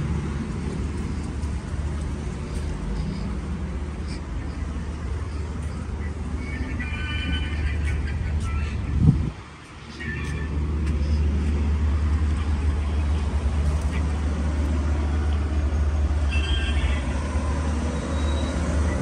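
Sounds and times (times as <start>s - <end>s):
traffic on nearby street: 0.0s - 19.0s.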